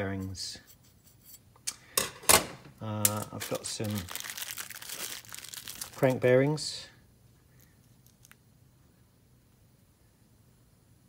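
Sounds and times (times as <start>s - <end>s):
plastic bag crinkling: 3.0s - 6.6s, 7.6s - 8.4s.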